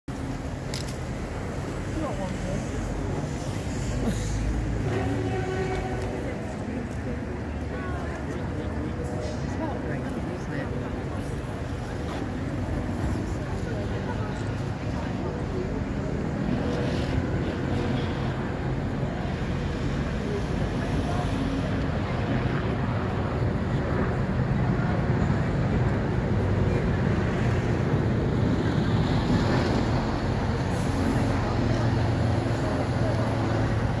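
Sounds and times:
city traffic rumble: 0:00.1 - 0:34.0
murmur of voices: 0:00.1 - 0:34.0.

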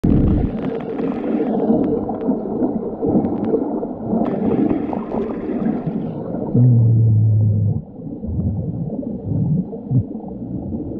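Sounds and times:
muffled underwater churning: 0:00.0 - 0:10.9.

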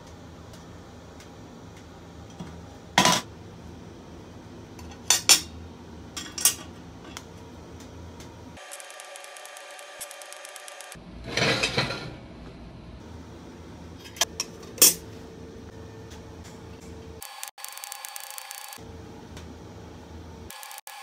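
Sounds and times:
welding buzz: 0:08.6 - 0:11.0, 0:17.2 - 0:18.8, 0:20.5 - 0:21.0.

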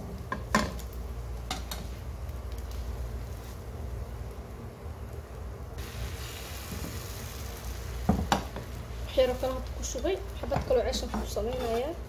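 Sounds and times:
egg sizzling in a pan: 0:00.0 - 0:12.0
steady low hum: 0:00.0 - 0:12.0.

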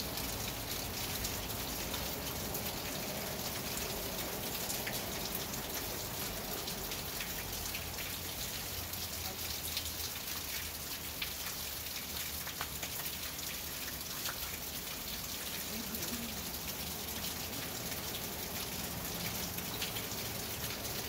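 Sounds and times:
rain falling on a roof: 0:00.0 - 0:21.0.

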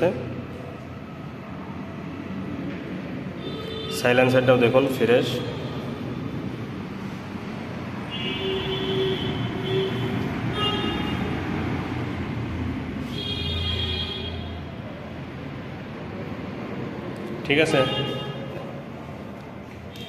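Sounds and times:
traffic noise: 0:00.0 - 0:20.0
vehicle horns: 0:03.4 - 0:04.4, 0:08.1 - 0:11.6, 0:13.0 - 0:14.7, 0:17.6 - 0:18.7.

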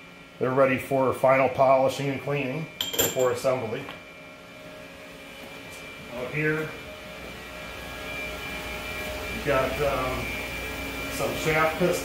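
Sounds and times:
machinery and ventilation hum: 0:00.0 - 0:12.0.

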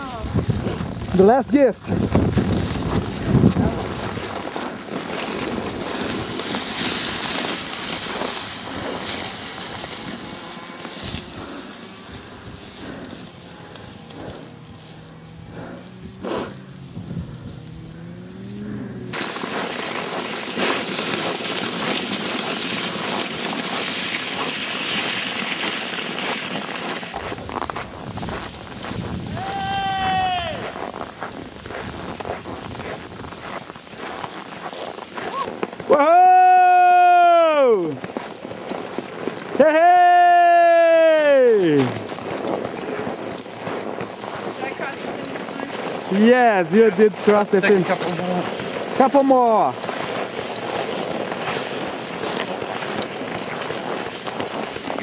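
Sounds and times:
footsteps crunching on snow: 0:00.0 - 0:55.0
sled pulled over snow: 0:00.0 - 0:55.0.

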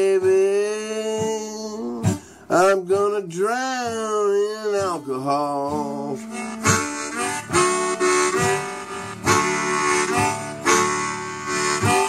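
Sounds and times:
acoustic guitar strumming: 0:00.0 - 0:12.0
blues harmonica solo: 0:04.6 - 0:12.0.

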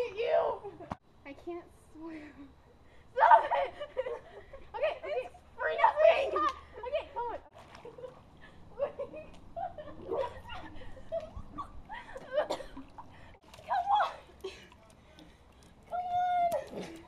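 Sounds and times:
girls laughing and squealing: 0:03.1 - 0:14.7.

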